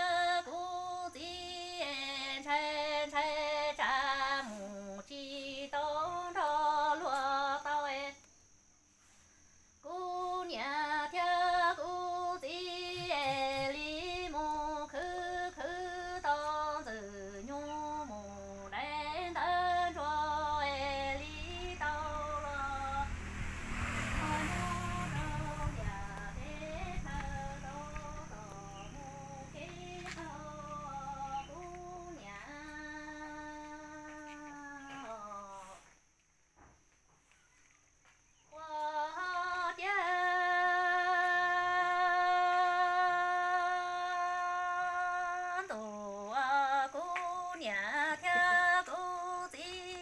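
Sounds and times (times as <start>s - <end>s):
woman singing a lament: 0.0s - 8.3s, 9.8s - 36.0s, 38.5s - 50.0s.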